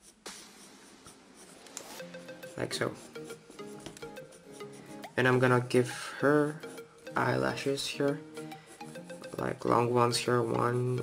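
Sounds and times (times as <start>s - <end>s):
pen scratching on paper: 0.0s - 5.8s, 8.7s - 11.0s.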